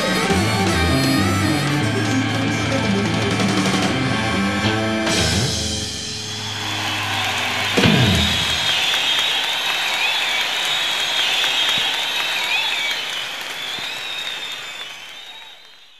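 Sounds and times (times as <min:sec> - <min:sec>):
rock band playing live: 0:00.0 - 0:08.8
audience applauding: 0:06.2 - 0:15.9.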